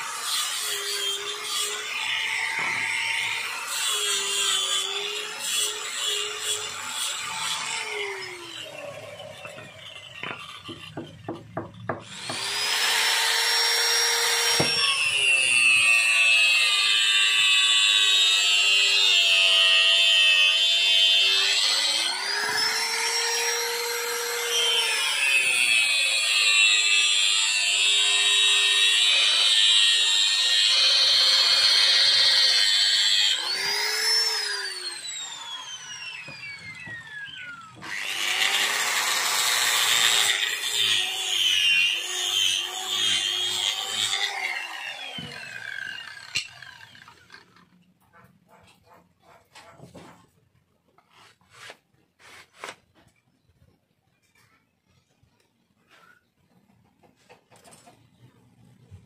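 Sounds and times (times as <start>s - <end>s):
angle grinder sanding wood: 0.0s - 47.1s, 51.0s - 52.8s
angle grinder cutting wood: 0.0s - 47.9s.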